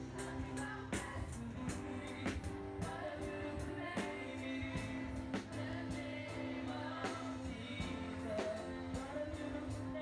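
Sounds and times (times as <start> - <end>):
drum kit strikes: 0.0 - 10.0
electronic keyboard chords: 0.0 - 10.0.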